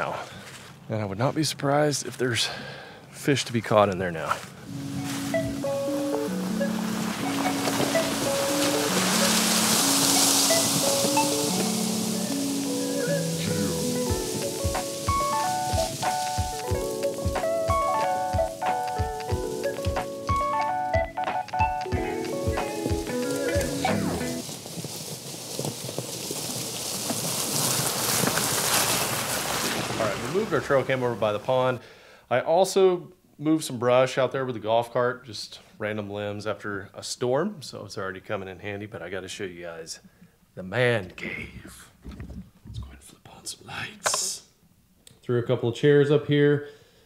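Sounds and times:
melody of short stepping notes: 0:04.6 - 0:24.4
steady low beat: 0:13.4 - 0:24.4.

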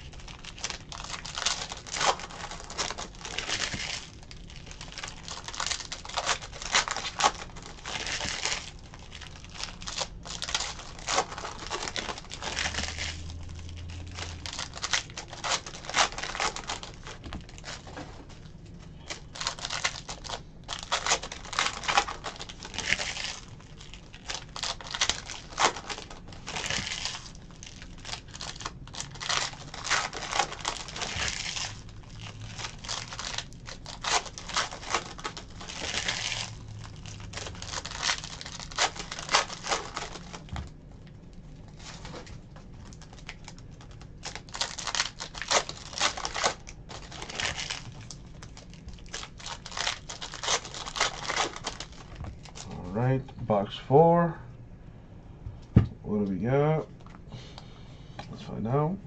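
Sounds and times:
foil wrappers crinkling and tearing: 0:00.0 - 0:53.2.

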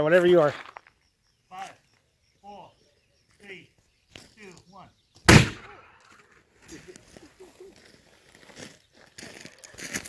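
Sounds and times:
rustling and scuffing: 0:03.3 - 0:05.2, 0:06.0 - 0:10.0.

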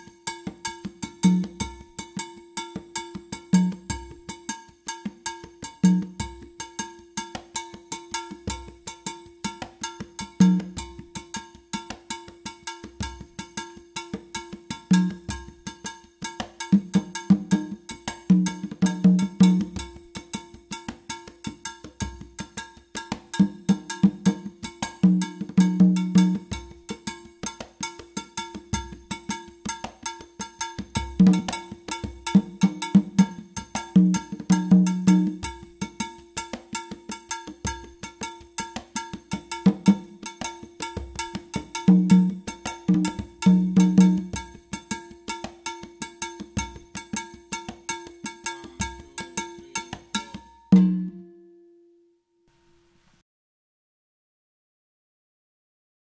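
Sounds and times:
conga drumming: 0:00.0 - 0:51.3
cowbell struck with stick: 0:00.0 - 0:51.6.

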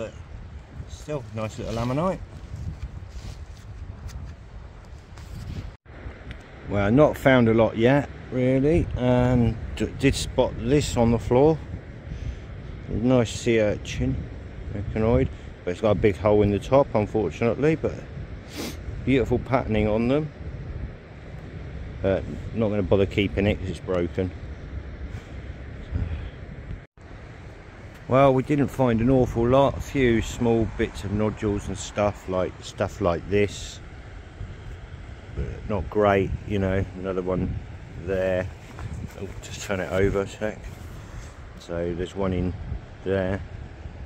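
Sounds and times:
wind rumble on microphone: 0:00.0 - 0:44.0
faint rustles and ticks of handling: 0:00.6 - 0:05.8, 0:38.2 - 0:41.8.

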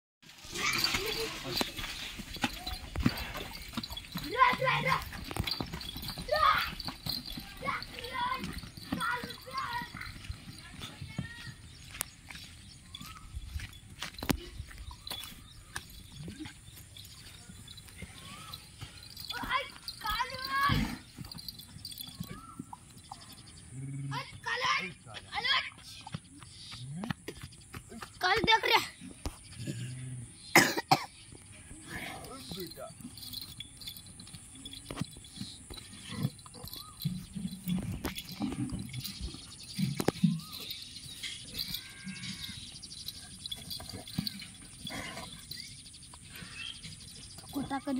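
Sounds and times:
hooves stamping on dry ground: 0:00.2 - 0:29.9, 0:31.2 - 0:47.9
buffalo low grunts: 0:29.5 - 0:30.5, 0:35.5 - 0:47.7.

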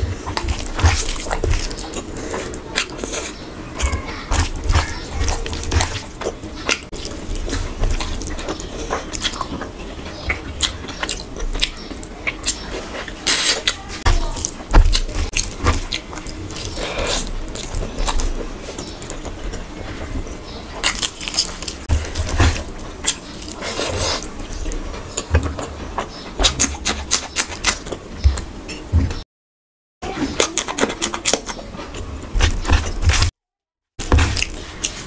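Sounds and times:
chewing with clicks and smacks: 0:00.1 - 0:28.5, 0:30.4 - 0:33.3, 0:34.0 - 0:35.0.

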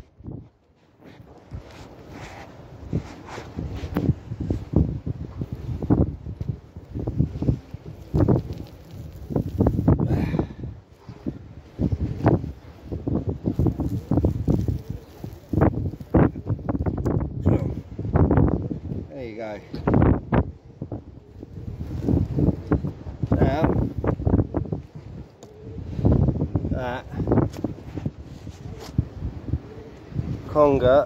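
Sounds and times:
wind buffeting microphone: 0:00.0 - 0:31.0
rustling and handling noise: 0:00.4 - 0:04.7, 0:07.4 - 0:10.0, 0:11.8 - 0:17.0, 0:27.5 - 0:29.0.

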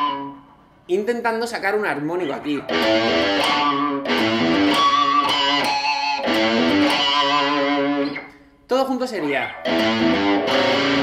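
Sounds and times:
distorted electric guitar lick: 0:00.0 - 0:00.6, 0:02.3 - 0:08.4, 0:09.2 - 0:11.0.

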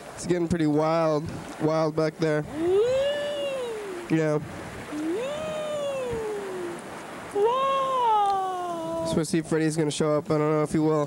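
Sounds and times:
long wailing call: 0:02.5 - 0:04.2, 0:04.9 - 0:09.1.

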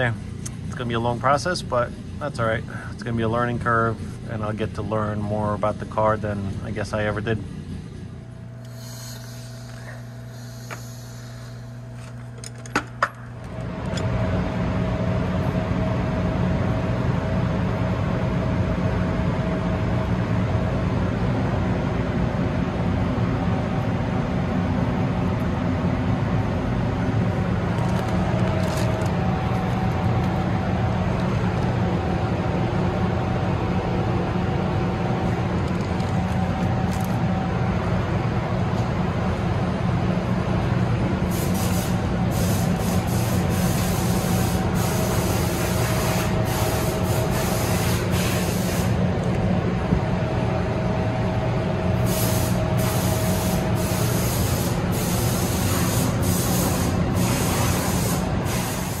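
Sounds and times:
mechanical drone with whine: 0:00.0 - 0:59.0.

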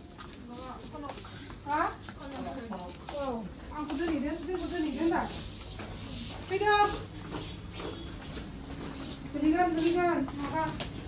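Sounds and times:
person speaking: 0:00.4 - 0:05.4.

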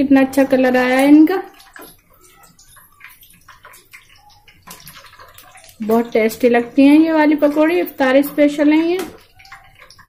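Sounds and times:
deep-frying sizzle: 0:00.0 - 0:10.0
spoon scraping pan: 0:00.4 - 0:10.0.

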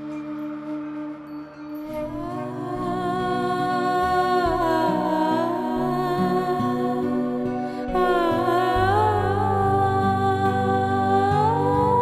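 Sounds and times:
hummed melody: 0:00.0 - 0:12.0
long held low notes: 0:01.8 - 0:12.0.

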